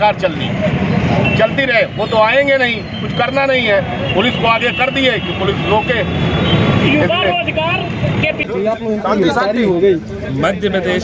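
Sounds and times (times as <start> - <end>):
low rumble of street noise: 0.0 - 11.0
man speaking: 8.4 - 11.0.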